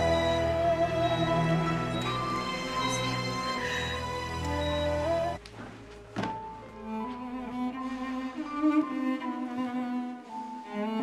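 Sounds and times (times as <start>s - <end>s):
dramatic orchestral score: 0.0s - 5.4s
slow bowed strings: 0.0s - 11.0s
thud: 6.2s - 6.4s.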